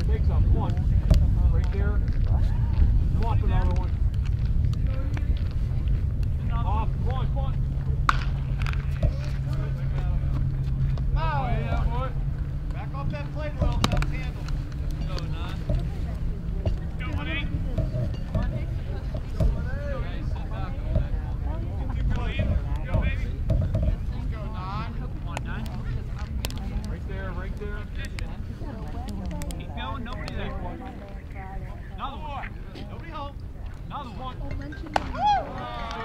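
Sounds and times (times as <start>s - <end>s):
wind rumble on microphone: 0.0s - 33.9s
distant voices calling and chatting: 0.0s - 36.0s
low hum: 0.0s - 36.0s.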